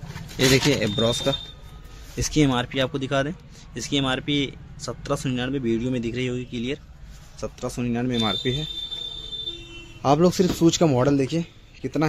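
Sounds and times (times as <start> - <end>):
man talking: 0.4 - 1.5, 7.4 - 8.7
high-pitched electronic beep: 0.8 - 1.6.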